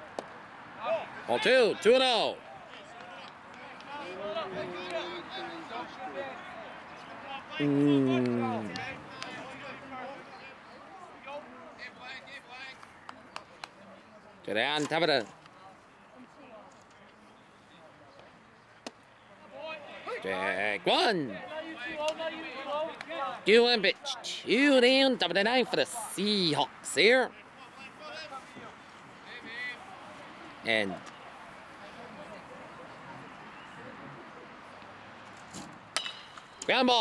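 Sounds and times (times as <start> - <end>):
distant chatter: 0.0 - 37.0
faint outdoor ballpark background: 0.0 - 37.0
man talking: 7.6 - 9.9
bat cracking on ball: 36.0 - 36.7.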